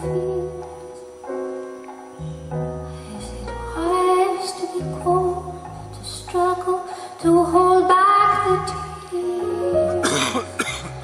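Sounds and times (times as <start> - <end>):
woman singing: 0.0 - 1.1, 3.2 - 10.3
person coughing: 10.0 - 11.0.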